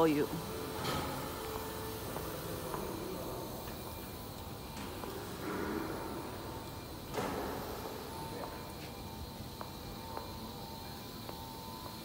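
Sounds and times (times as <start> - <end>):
faint whine tones: 0.0 - 12.0.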